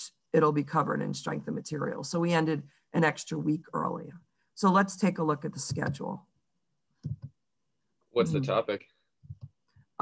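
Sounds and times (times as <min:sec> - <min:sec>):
person speaking: 0:08.2 - 0:09.4.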